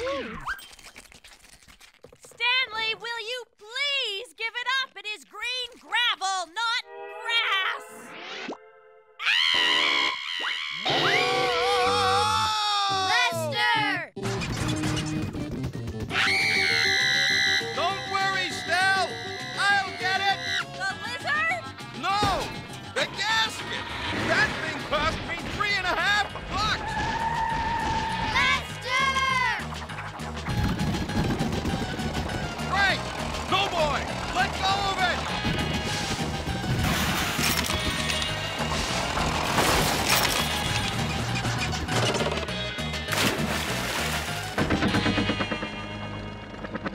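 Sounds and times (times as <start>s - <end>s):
cartoon character voices: 10.9s - 14.1s, 28.2s - 29.7s
cartoon music: 16.1s - 22.4s.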